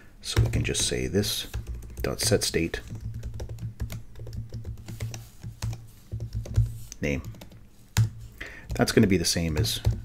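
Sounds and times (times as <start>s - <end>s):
typing on computer keyboard: 0.4s - 8.1s.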